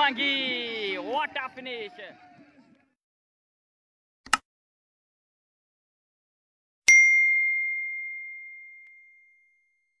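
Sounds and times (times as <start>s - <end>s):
bell ding ringing: 6.9s - 9.8s.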